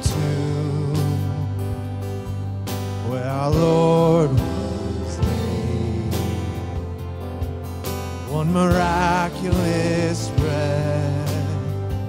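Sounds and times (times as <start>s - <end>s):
person singing: 0.0s - 1.8s, 3.0s - 7.0s, 8.3s - 12.0s
acoustic guitar strumming: 0.0s - 12.0s.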